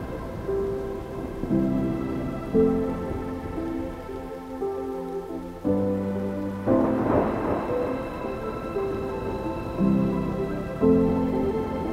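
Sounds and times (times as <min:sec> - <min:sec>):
electronic ambient music: 0:00.0 - 0:11.9.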